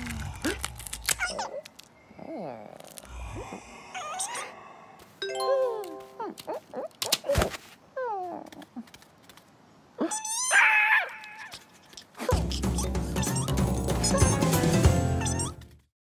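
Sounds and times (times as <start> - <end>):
squeaky cartoon creature calls: 10.0 - 11.5, 12.3 - 14.4.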